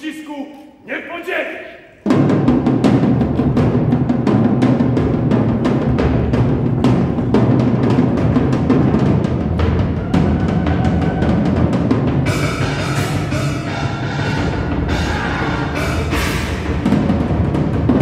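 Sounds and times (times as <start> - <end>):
battle music with heavy drumbeats: 2.0 - 18.0.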